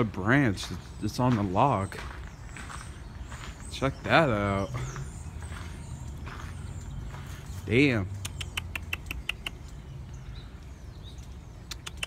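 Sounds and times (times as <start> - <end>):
small animal chirping: 8.2 - 9.8, 11.6 - 12.0.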